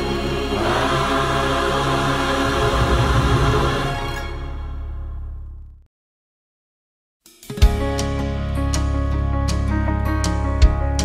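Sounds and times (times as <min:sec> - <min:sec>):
choir singing with instruments: 0:00.0 - 0:04.9.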